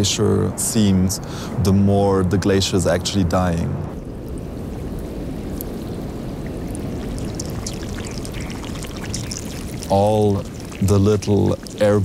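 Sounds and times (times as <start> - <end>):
meltwater running and gurgling: 4.0 - 12.0
air bubbles ticking: 4.3 - 12.0.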